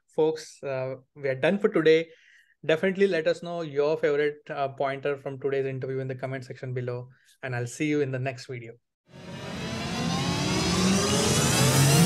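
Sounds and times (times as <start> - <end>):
rising whoosh: 9.1 - 12.0.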